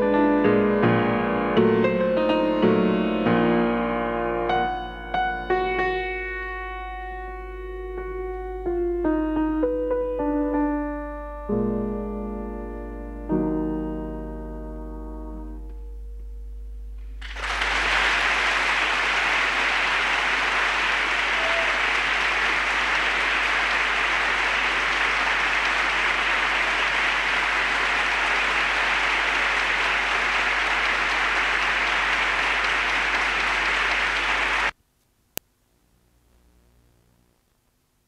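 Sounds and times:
piano tone: 0:00.0 - 0:34.7
audience applauding: 0:17.2 - 0:34.8.

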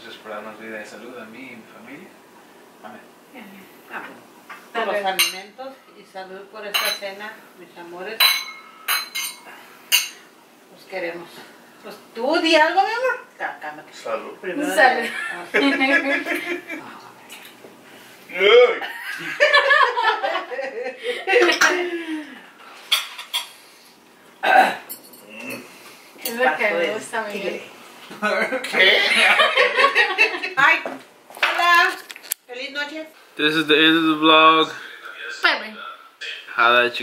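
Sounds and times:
wine glasses clinking: 0:05.2 - 0:05.5, 0:06.7 - 0:07.0, 0:08.2 - 0:10.3, 0:24.9 - 0:25.2.

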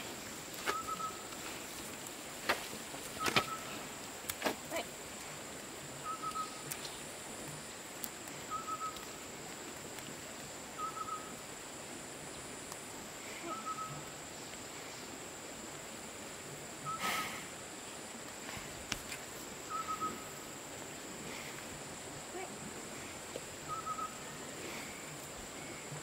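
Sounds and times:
bird whistled call: 0:00.7 - 0:01.2, 0:06.0 - 0:06.6, 0:08.5 - 0:09.0, 0:10.8 - 0:11.3, 0:13.5 - 0:14.0, 0:19.7 - 0:20.2, 0:23.7 - 0:24.2.

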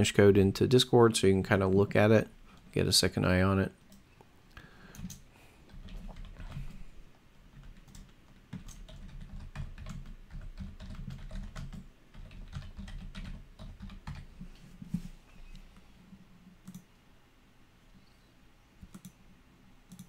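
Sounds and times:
typing on computer keyboard: 0:04.9 - 0:06.8, 0:07.5 - 0:14.3, 0:18.8 - 0:19.2.

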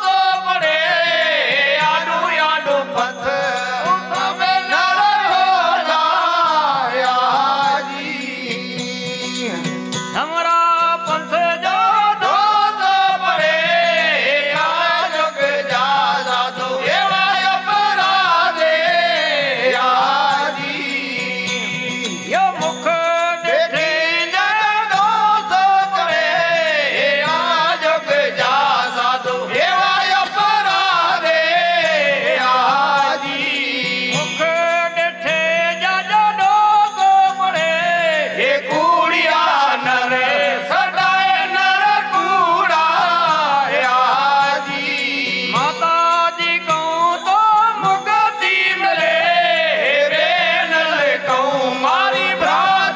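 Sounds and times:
hand cymbals ringing: 0:00.0 - 0:52.9
percussion beat: 0:00.0 - 0:52.9
person singing long ornamented notes: 0:00.0 - 0:52.9.

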